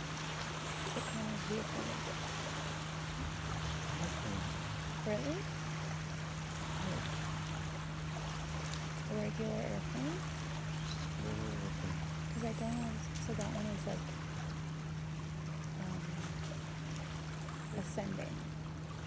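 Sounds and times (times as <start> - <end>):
small waves lapping on shore: 0.0 - 19.0
steady low hum: 0.0 - 19.0
faint voices: 3.9 - 5.5, 11.2 - 14.1.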